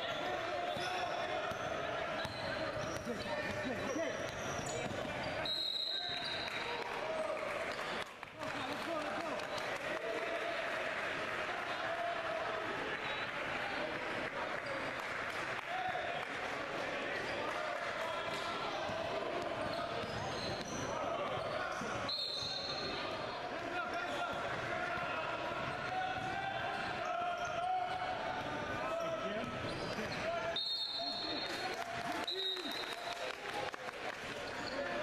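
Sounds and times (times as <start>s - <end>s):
players and spectators chattering: 0.0s - 35.0s
basketball bouncing on court: 18.8s - 22.5s.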